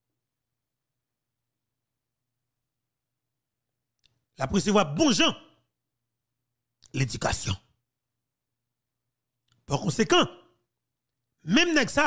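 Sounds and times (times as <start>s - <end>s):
man speaking: 4.4s - 5.6s, 6.8s - 7.7s, 9.7s - 10.5s, 11.4s - 12.0s.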